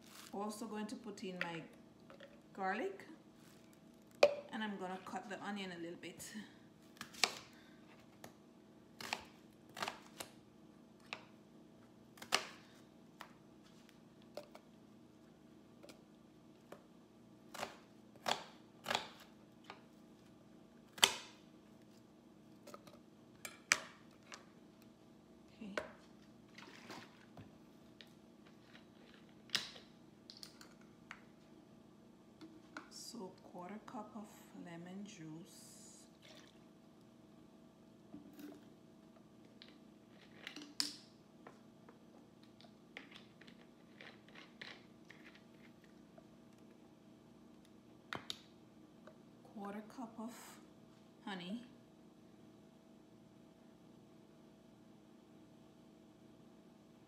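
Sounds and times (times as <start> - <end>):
faint steady hum: 0.0 - 57.0.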